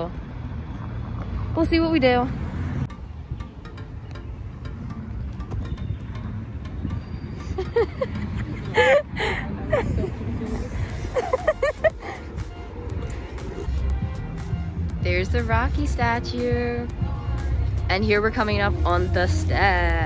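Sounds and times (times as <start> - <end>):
traffic rumble: 0.0 - 20.0
wind on microphone: 2.8 - 14.0
distant voices or singing: 11.9 - 19.6.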